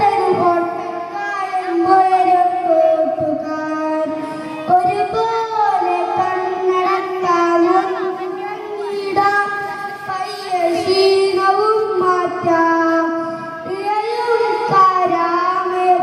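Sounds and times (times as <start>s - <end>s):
boy singing: 0.0s - 16.0s.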